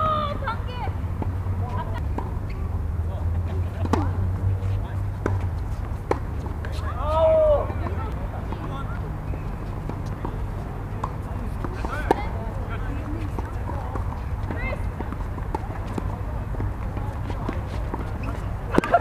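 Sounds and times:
faint voices: 1.5 - 18.8
tennis ball pops: 18.7 - 19.0.

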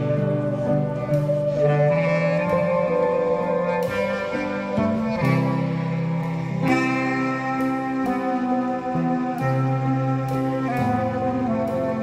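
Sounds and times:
slow instrumental music: 0.0 - 12.0.

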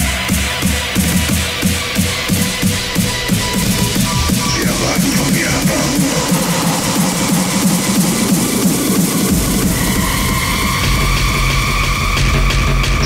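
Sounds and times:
deep bass kick: 0.0 - 13.0
electronic dance music: 0.0 - 13.0.

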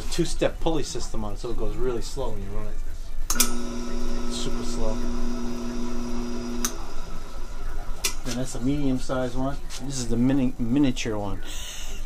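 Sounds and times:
switch click: 3.3 - 3.6, 6.6 - 6.8
drill press motor humming: 3.4 - 8.2.

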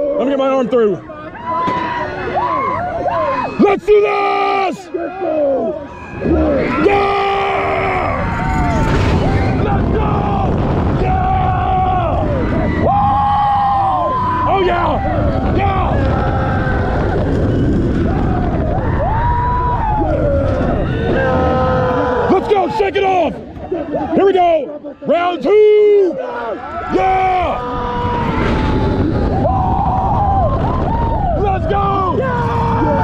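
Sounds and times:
riders screaming and yelling: 0.9 - 33.0
roller coaster train rumble: 4.2 - 23.9, 26.6 - 33.0
wind rushing over microphone: 5.9 - 23.8, 26.6 - 33.0.

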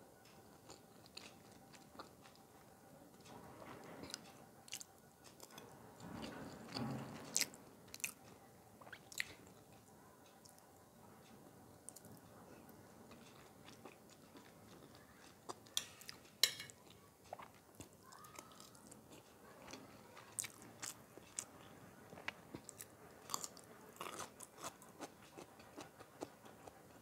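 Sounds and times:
close chewing: 0.5 - 2.5, 13.1 - 27.0.

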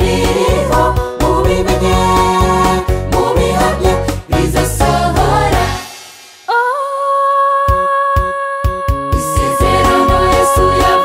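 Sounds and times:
gospel choir singing: 0.0 - 6.7, 9.1 - 11.0.

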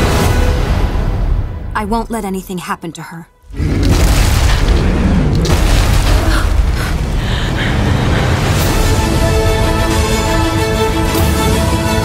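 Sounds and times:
deep cinematic boom and rumble: 3.5 - 10.5.

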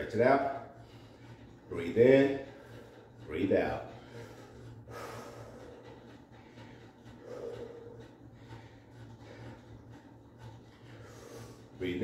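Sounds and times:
man breathing deeply: 3.9 - 10.2.

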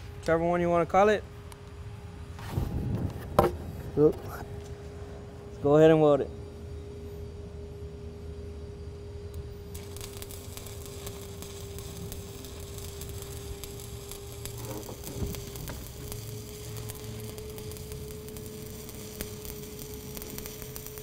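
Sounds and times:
steady hum: 0.0 - 21.0
welding arc crackling: 9.6 - 21.0.

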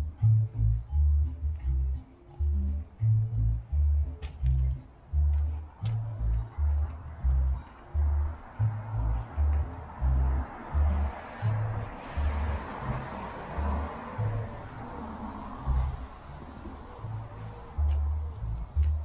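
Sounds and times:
background music with pulsing bass: 0.0 - 19.0.

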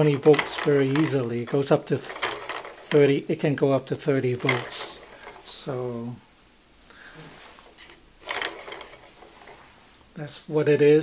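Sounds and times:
spinning rotor rattling whir: 0.0 - 3.3, 4.2 - 5.7, 8.2 - 9.6.

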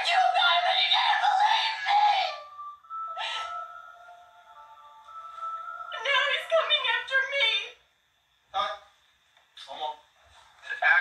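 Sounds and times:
held music tones: 1.3 - 7.3.

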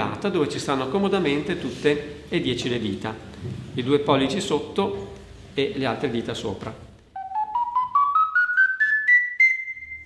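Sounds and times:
ocarina playing a rising scale: 7.1 - 10.0.

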